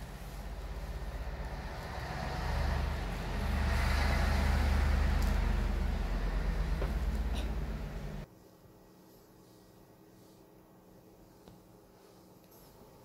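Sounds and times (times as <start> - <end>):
low droning rumble: 0.0 - 8.2.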